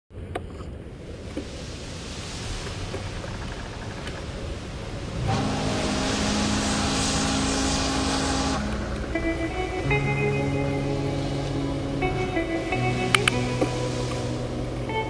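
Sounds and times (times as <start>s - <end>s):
wind and bicycle rolling noise: 0.1s - 15.0s
steady hum with held tones: 0.2s - 15.0s.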